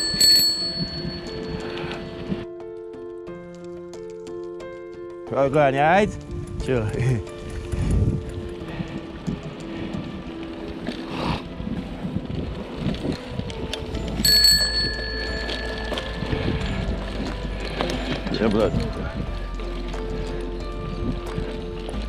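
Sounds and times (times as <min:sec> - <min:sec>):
bicycle bell ringing: 0:00.0 - 0:01.8, 0:14.2 - 0:16.7
bike rattling on rough trail: 0:00.0 - 0:02.0, 0:05.4 - 0:22.0.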